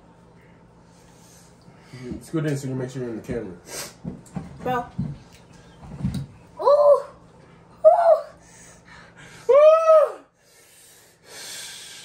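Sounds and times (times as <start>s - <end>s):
person saying ooh: 9.5s - 10.3s
loud airy breath through mouth: 10.4s - 12.0s.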